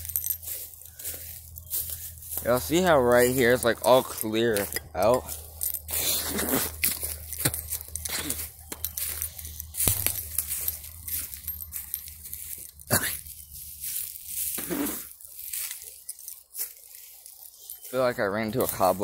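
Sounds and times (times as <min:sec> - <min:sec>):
footsteps crunching dry leaves: 0:00.0 - 0:19.0.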